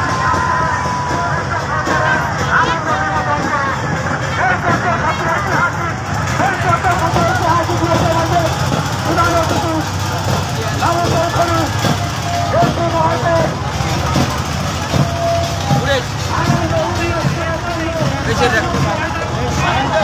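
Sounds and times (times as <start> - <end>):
crowd shouting and cheering: 0.0 - 20.0
low engine hum: 3.3 - 20.0.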